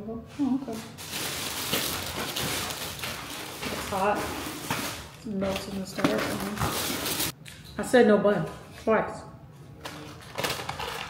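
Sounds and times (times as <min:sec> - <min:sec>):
plastic bag rustling and crinkling: 0:00.4 - 0:07.4, 0:10.0 - 0:11.0.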